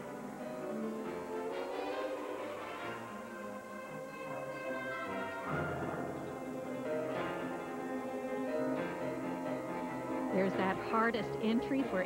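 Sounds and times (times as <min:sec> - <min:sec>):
orchestral music: 0:00.0 - 0:12.0.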